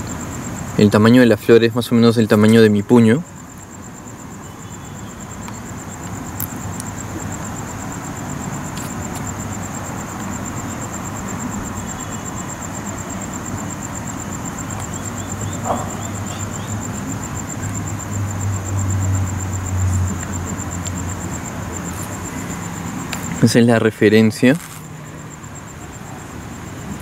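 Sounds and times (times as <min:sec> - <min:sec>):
pulsing insect trill: 0:00.0 - 0:27.0
traffic rumble: 0:00.0 - 0:27.0
vehicle engine: 0:05.1 - 0:27.0.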